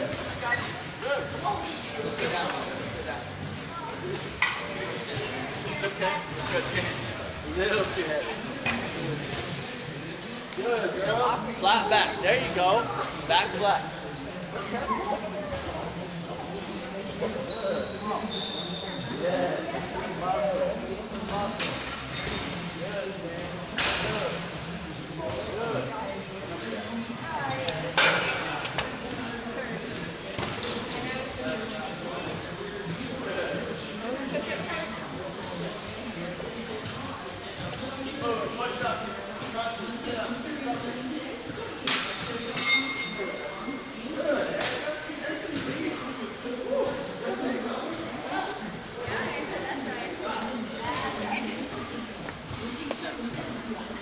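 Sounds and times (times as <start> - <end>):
metallic clink of dumbbells: 41.9 - 43.4.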